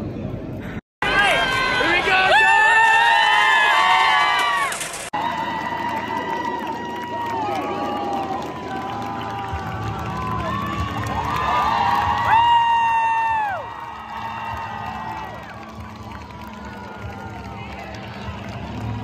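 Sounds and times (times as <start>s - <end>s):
crowd cheering and screaming: 1.0s - 19.0s.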